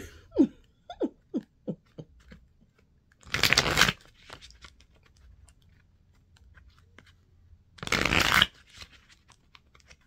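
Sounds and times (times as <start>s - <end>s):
cards being shuffled: 1.8s - 10.0s.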